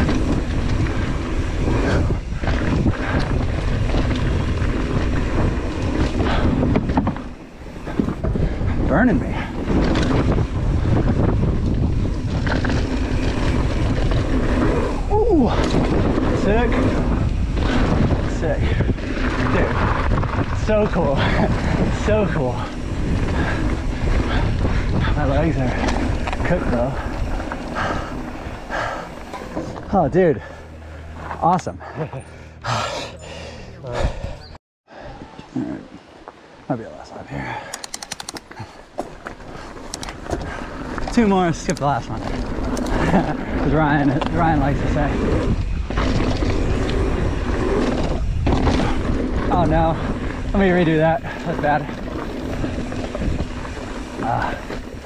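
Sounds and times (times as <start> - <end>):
tyres rolling over loose dirt: 0.0 - 31.7, 36.7 - 55.0
wind buffeting microphone: 0.0 - 32.5, 37.9 - 55.0
bike rattling: 0.0 - 35.8, 36.7 - 55.0.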